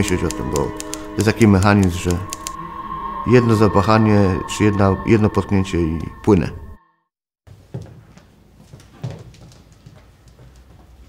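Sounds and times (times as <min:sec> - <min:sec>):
footsteps and shuffling on stage: 0:07.5 - 0:11.0.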